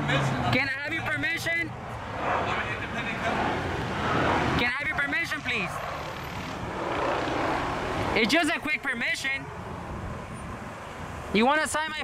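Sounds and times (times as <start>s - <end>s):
vehicle passing: 0.0s - 11.4s.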